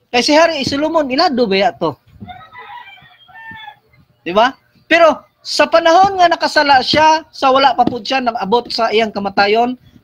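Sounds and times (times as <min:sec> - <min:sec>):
rooster crowing: 0:02.2 - 0:04.0.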